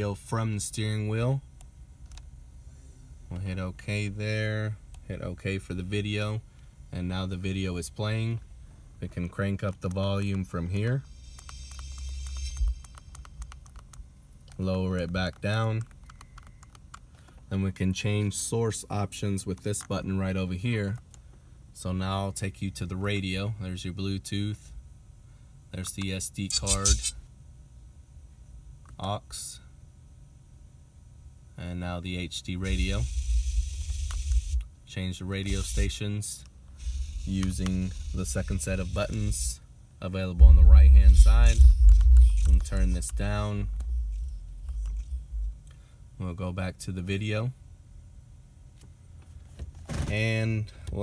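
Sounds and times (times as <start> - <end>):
small clicks: 11.3 - 17.4, 33.8 - 34.7, 41.6 - 45.2
radio static hiss: 26.4 - 27.2, 32.6 - 34.6, 35.3 - 36.2, 36.8 - 39.6, 40.3 - 45.6
low rumble: 32.6 - 34.7, 40.4 - 46.2.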